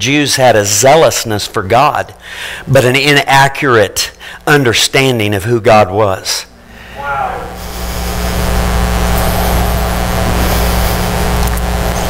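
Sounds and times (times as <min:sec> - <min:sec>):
electrical hum: 0:00.0 - 0:12.0
hiss: 0:07.6 - 0:08.4.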